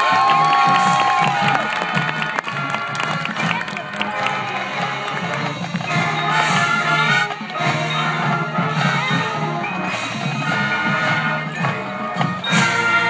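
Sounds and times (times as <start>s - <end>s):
marching band playing chords: 0.0s - 13.0s.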